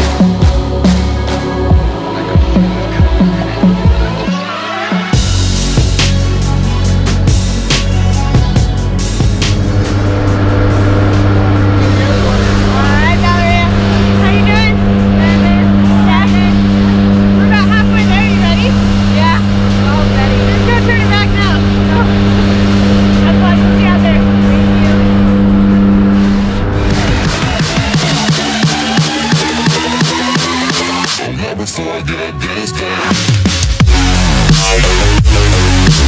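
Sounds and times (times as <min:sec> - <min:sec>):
music with a beat: 0:00.0 - 0:31.4, 0:32.9 - 0:36.0
plane engines droning: 0:05.2 - 0:31.0
person talking: 0:11.8 - 0:16.8, 0:17.4 - 0:22.3, 0:23.1 - 0:25.2.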